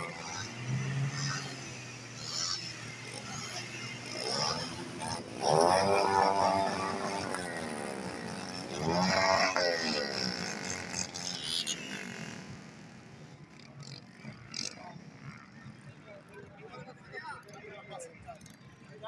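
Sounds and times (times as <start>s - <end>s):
microlight engine revving: 0.0s - 13.1s.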